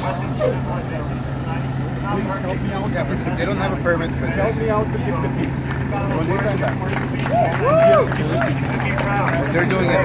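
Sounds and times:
indistinct talking: 0:00.0 - 0:10.0
street traffic hum: 0:00.0 - 0:10.0.

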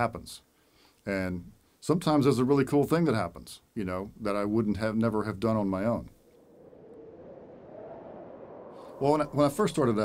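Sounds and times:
faint soft drone of noise: 0:05.3 - 0:10.0.

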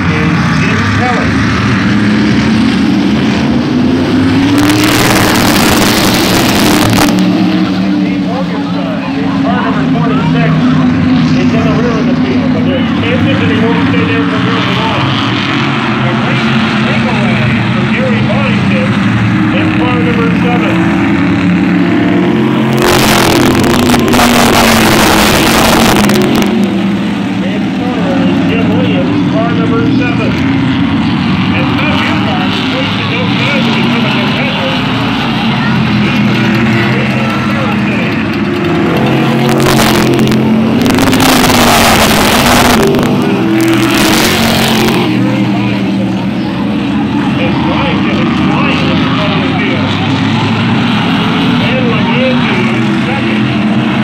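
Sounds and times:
race car engines droning: 0:00.0 - 0:54.0
race cars passing close by: 0:00.0 - 0:54.0.

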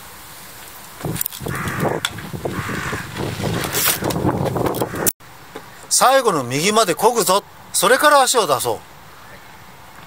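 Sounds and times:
bicycle rolling on gravel: 0:00.6 - 0:05.0
crow cawing: 0:01.4 - 0:04.2, 0:04.8 - 0:05.1.

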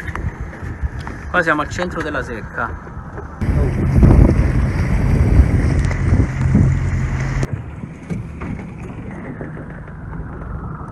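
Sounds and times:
wind rumbling on microphone: 0:00.0 - 0:10.9
boat engine hum: 0:03.0 - 0:10.9
water wash: 0:03.4 - 0:09.6.

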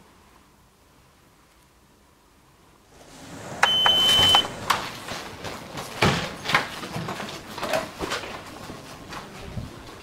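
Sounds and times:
rush of noise: 0:02.9 - 0:05.4
knocks and clatter of movement: 0:03.0 - 0:10.0
electronic beep: 0:03.6 - 0:04.6.

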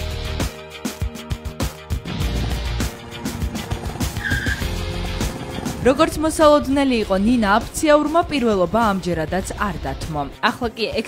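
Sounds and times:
background music: 0:00.0 - 0:11.0
go-kart engines running: 0:02.3 - 0:07.4
high squeal: 0:04.1 - 0:04.8.

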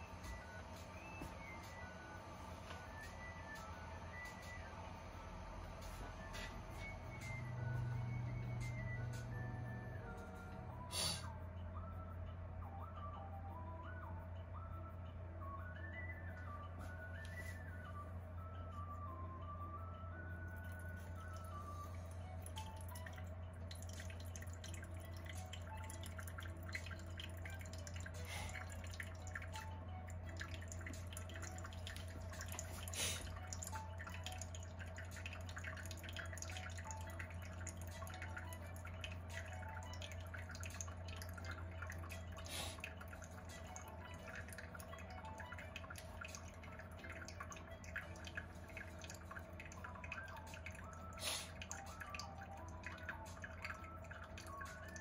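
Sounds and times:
low hum: 0:00.0 - 0:55.0
tea dripping into glass: 0:05.8 - 0:10.8, 0:20.5 - 0:55.0.

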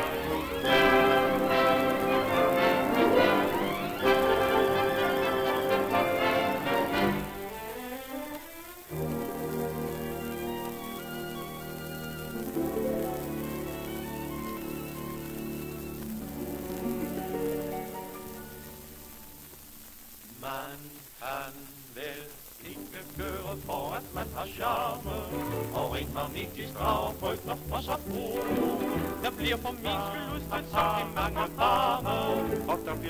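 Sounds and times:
dance orchestra playing: 0:00.0 - 0:07.7
record hiss and crackle: 0:00.0 - 0:33.0.

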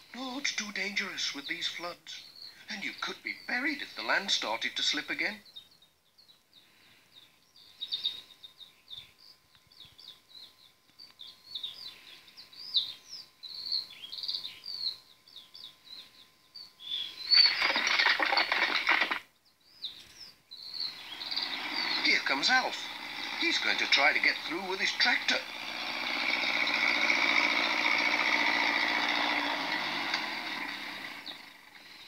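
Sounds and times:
birds chirping: 0:00.0 - 0:32.0.

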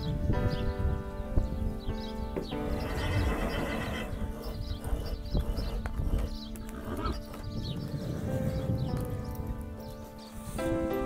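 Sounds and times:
background music: 0:00.0 - 0:11.0
horse whinnying: 0:02.6 - 0:05.8, 0:06.7 - 0:07.3.

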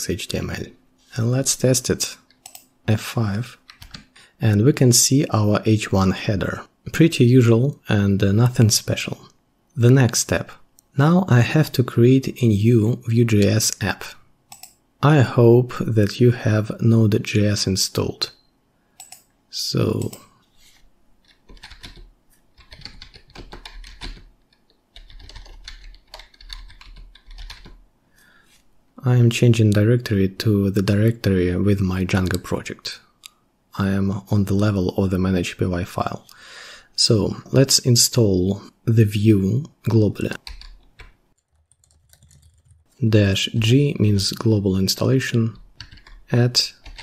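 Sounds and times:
computer keyboard typing: 0:02.3 - 0:02.7, 0:03.6 - 0:04.2, 0:14.5 - 0:14.8, 0:19.0 - 0:19.3, 0:21.2 - 0:27.8, 0:40.4 - 0:42.8, 0:45.6 - 0:47.0.

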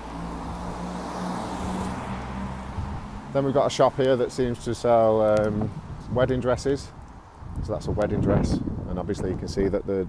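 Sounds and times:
vehicle engine humming: 0:00.0 - 0:06.0.

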